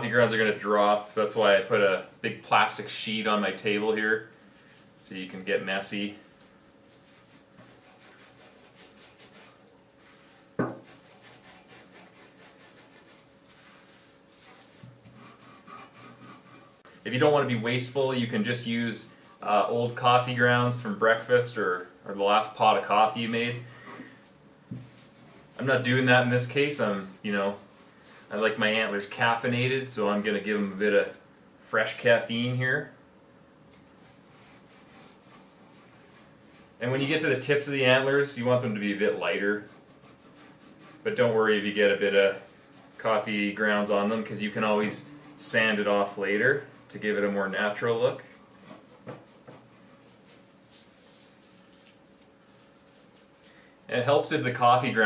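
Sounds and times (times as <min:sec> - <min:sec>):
gritty scratching and rubbing: 0:00.0 - 0:23.6, 0:24.8 - 0:31.2, 0:34.1 - 0:55.0.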